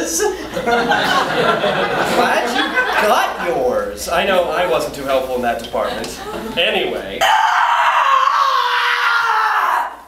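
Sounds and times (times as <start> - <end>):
woman screaming: 7.2 - 10.0.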